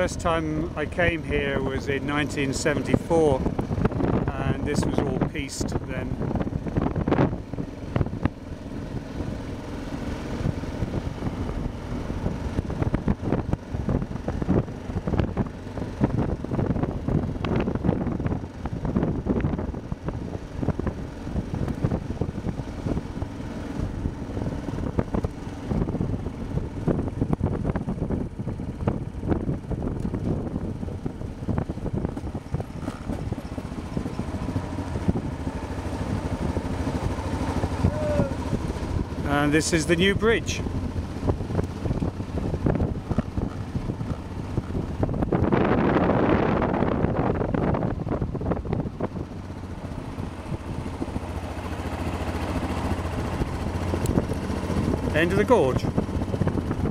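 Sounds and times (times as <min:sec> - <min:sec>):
wind buffeting: 0:00.0 - 0:39.4, 0:40.0 - 0:56.9
motorcycle engine running: 0:00.0 - 0:56.9
road noise: 0:00.0 - 0:56.9.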